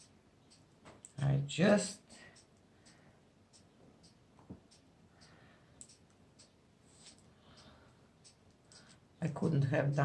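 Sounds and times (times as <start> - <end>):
soft small clicks: 0.0 - 1.3, 2.0 - 9.0.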